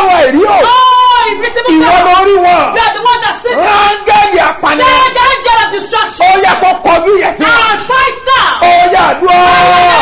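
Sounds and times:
man and woman chanting loudly: 0.0 - 10.0.

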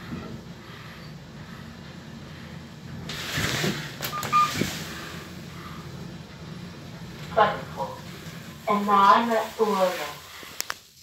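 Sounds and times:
lift low hum: 0.0 - 11.0
electronic arrival beep: 4.1 - 4.6.

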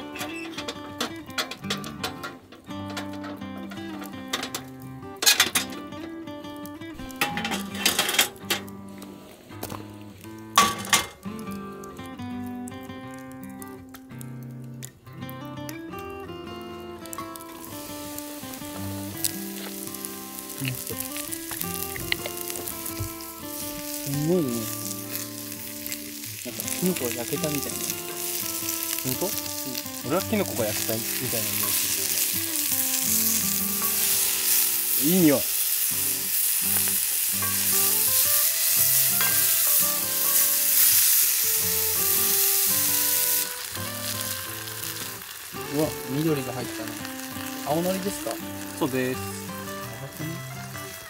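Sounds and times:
mushrooms sizzling in oil: 0.0 - 51.0.

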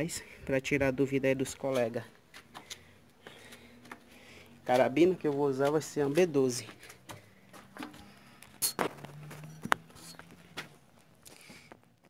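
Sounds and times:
scuffing footsteps: 1.7 - 8.2, 8.8 - 11.9.

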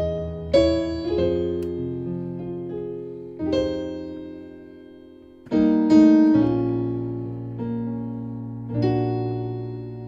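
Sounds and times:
piano playing slow chords: 0.0 - 10.0.

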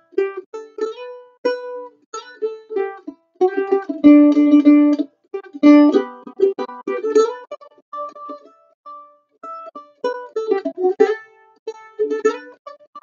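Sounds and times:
mandolin plucked melody: 0.0 - 13.0.

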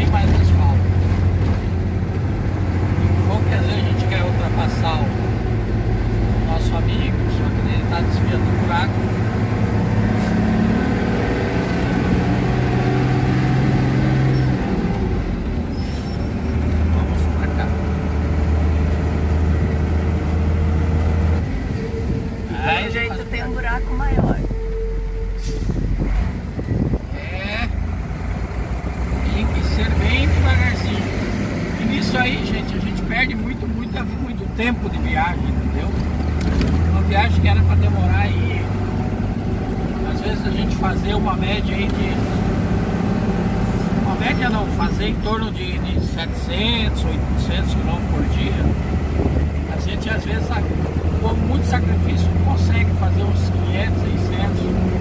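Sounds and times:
truck diesel engine running: 0.0 - 55.0
tyre and road noise: 0.0 - 55.0.

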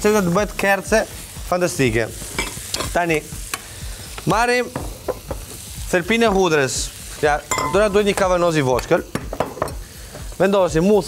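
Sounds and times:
food sizzling in frying pan: 0.0 - 11.0.

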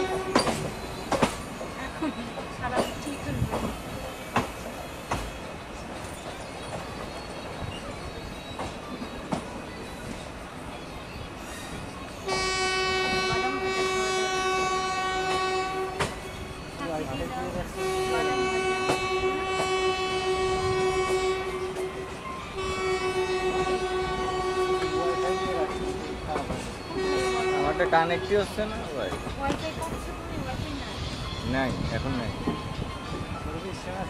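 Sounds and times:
train air horn blasts: 0.0 - 0.7, 12.2 - 16.2, 17.7 - 26.2, 26.9 - 28.0
train wheels on track: 0.0 - 34.0.

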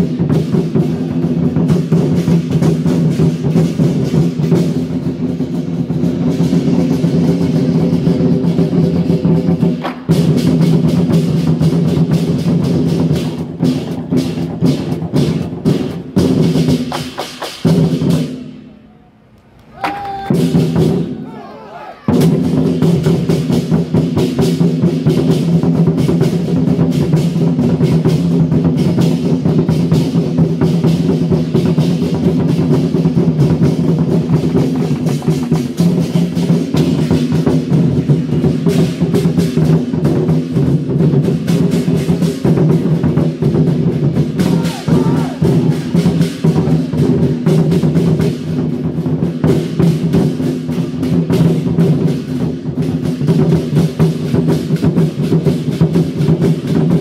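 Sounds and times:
large drums beating in rolls: 0.0 - 18.6, 19.7 - 57.0.

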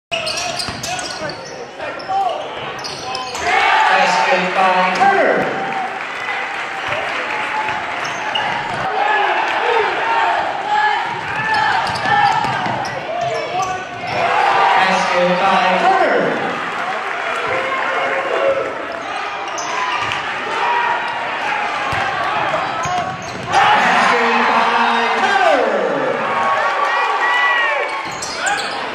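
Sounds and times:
crowd noise: 0.1 - 28.9
shouts echoing: 0.4 - 28.9
basketball bouncing on court floor: 0.5 - 0.9, 8.0 - 8.9, 11.0 - 14.2, 21.9 - 23.6.

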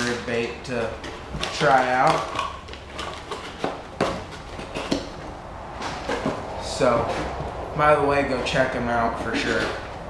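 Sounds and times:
plastic packaging and box handled: 0.0 - 7.6.

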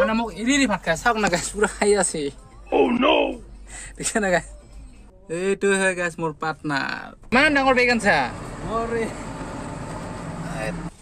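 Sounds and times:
outdoor noise: 6.6 - 11.0.

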